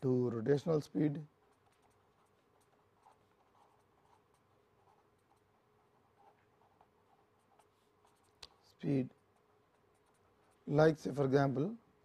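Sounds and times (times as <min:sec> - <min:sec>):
faint steady hum: 0:00.0 - 0:12.0
marker pen scratching on paper: 0:01.3 - 0:10.9.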